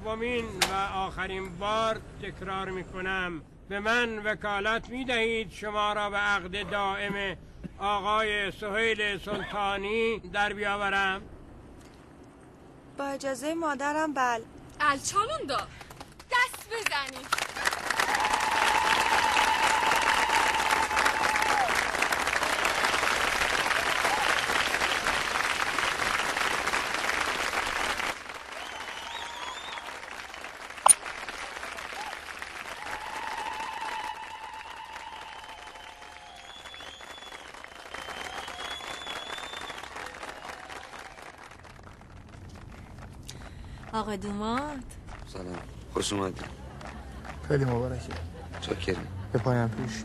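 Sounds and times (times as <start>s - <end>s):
guests clapping and cheering: 15.8s - 50.0s
crowd noise: 46.5s - 50.0s.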